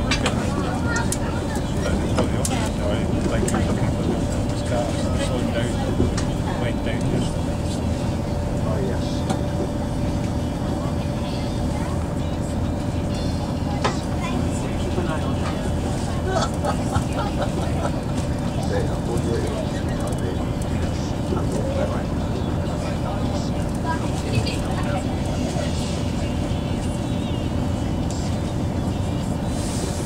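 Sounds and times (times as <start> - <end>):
train diesel engine rumble: 0.0 - 30.0
wheels on the track: 0.0 - 30.0.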